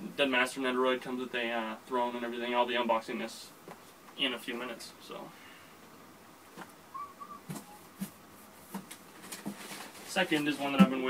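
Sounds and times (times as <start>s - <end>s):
cardboard boxes knocking and rustling: 7.5s - 11.0s.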